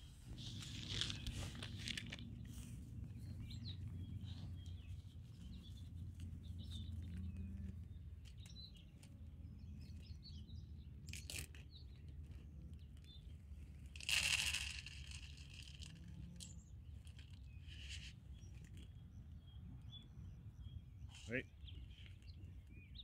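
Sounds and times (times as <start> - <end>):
low outdoor rumble: 0.0 - 22.8
small birds chirping: 0.0 - 23.0.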